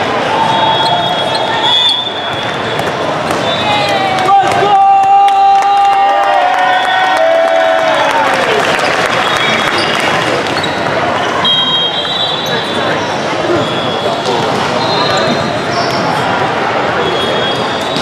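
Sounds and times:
many overlapping voices: 0.0s - 5.4s, 8.1s - 18.0s
short high whistle tones: 0.5s - 2.6s, 11.2s - 14.2s
volleyballs hit and bouncing: 2.3s - 4.7s.

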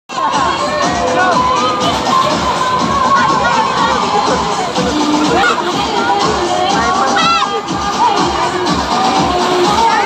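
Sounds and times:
children shouting and squealing: 0.1s - 10.0s.

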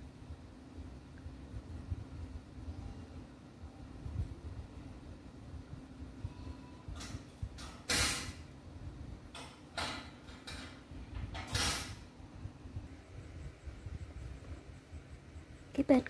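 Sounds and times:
low background rumble: 10.7s - 16.0s.

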